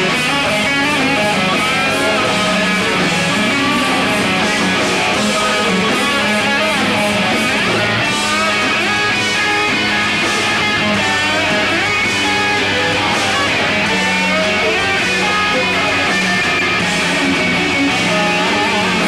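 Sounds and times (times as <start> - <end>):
drums and cymbals: 0.0 - 19.0
electric guitars: 0.0 - 19.0.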